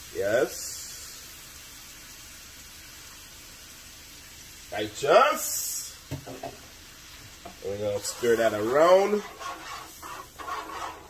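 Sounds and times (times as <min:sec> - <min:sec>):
sauce simmering with low hiss: 0:00.0 - 0:11.0.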